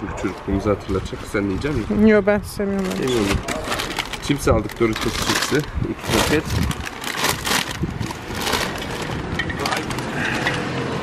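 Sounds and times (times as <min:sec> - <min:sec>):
plastic crisp packets crinkling: 0:02.8 - 0:10.1.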